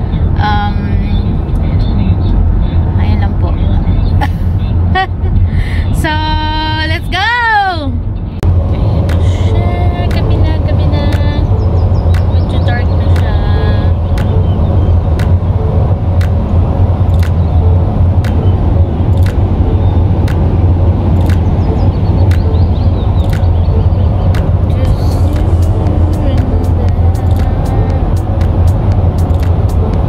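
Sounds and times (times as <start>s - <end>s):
car road noise rumble: 0.0s - 30.0s.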